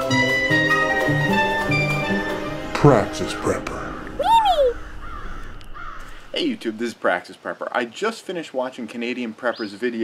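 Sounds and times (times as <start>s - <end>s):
short rising and falling call: 0.8s - 6.8s.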